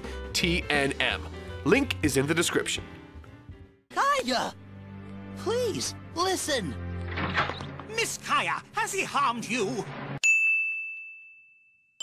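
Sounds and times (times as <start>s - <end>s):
bell-like ding: 10.2s - 12.0s.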